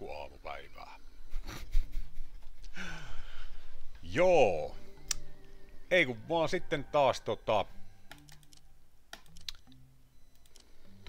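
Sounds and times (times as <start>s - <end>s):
computer mouse clicks: 8.1s - 10.7s.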